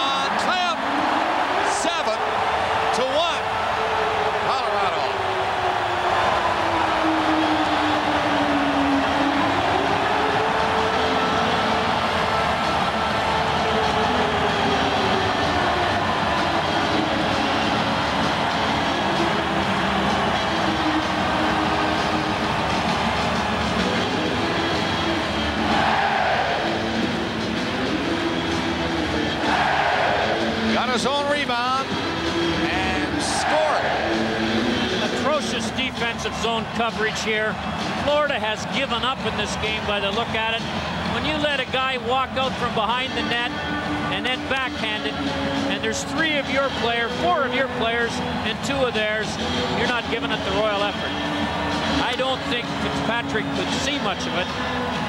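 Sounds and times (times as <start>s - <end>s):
arena crowd cheering: 0.0s - 55.0s.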